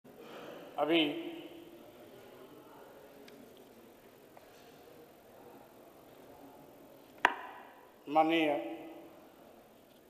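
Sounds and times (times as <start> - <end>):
faint room noise: 0.1 - 10.0.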